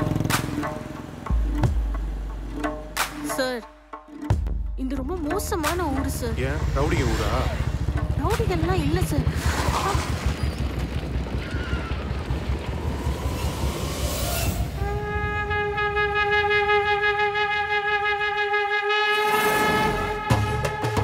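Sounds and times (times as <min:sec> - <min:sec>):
film music: 0:00.0 - 0:09.5, 0:11.2 - 0:21.0
low rumble: 0:06.0 - 0:17.4
whoosh: 0:12.6 - 0:14.8
held horn-like tone: 0:14.4 - 0:21.0.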